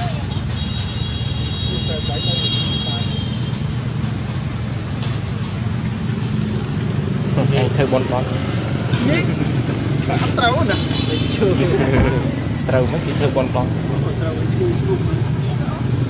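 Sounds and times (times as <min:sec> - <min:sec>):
people talking: 0:00.0 - 0:00.4, 0:01.7 - 0:03.3, 0:07.3 - 0:16.0
steady low hum: 0:01.5 - 0:16.0.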